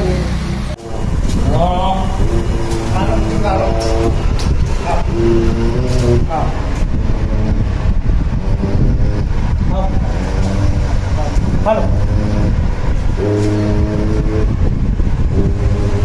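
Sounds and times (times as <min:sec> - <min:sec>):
low rumble: 0:00.0 - 0:16.0.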